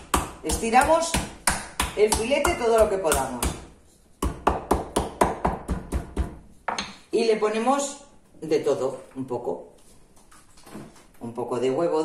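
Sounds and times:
meat mallet pounding on board: 0:00.0 - 0:06.9.

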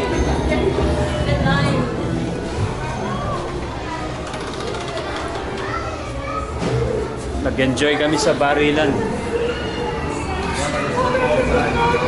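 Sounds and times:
indistinct voices of people talking: 0:00.0 - 0:12.0.

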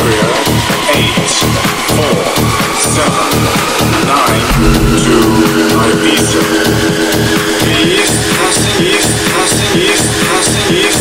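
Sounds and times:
low synth chord with bass: 0:04.5 - 0:09.0.

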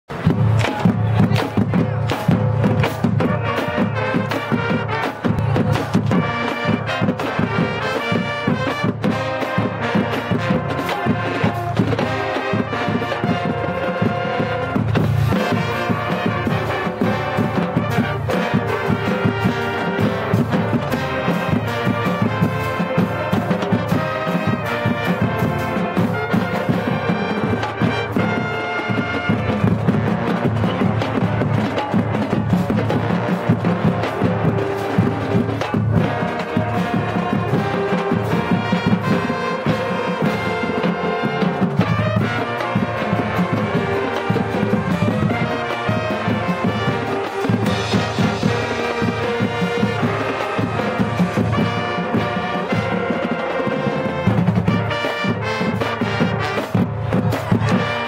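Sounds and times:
brass playing tune: 0:00.1 - 0:58.0
drums keeping steady beat: 0:00.1 - 0:58.0.

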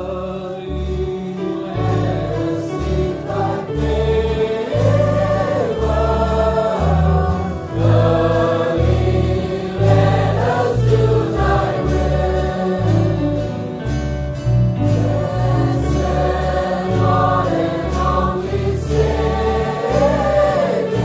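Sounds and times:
gospel choir singing: 0:00.0 - 0:21.0
instrumental backing with bass line: 0:00.0 - 0:21.0.

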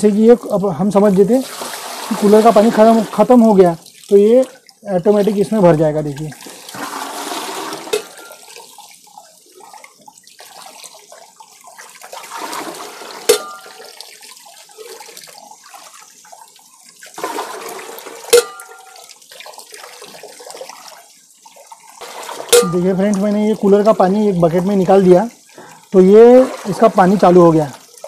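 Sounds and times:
water sloshing and splashing: 0:00.2 - 0:28.0
bucket knocking: 0:06.7 - 0:08.4, 0:17.2 - 0:18.9, 0:22.0 - 0:23.3.

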